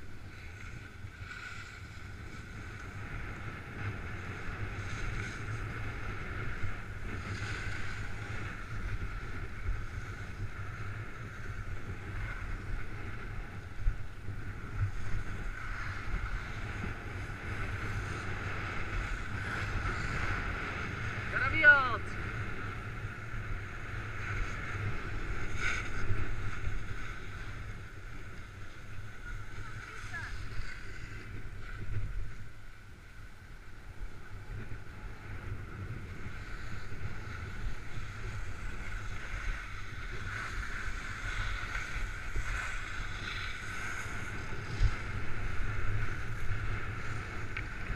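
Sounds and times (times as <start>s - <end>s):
wind rushing over microphone: 0.0s - 47.9s.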